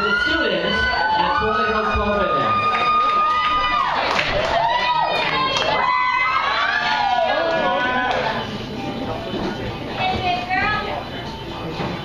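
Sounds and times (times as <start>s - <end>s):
audience cheering and whooping: 0.0s - 8.4s.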